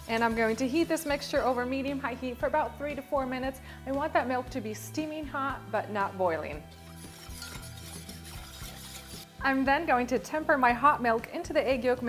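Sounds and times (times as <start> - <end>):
whisk stirring in a metal saucepan: 0.0 - 1.6, 6.6 - 9.4
background music: 0.0 - 12.0.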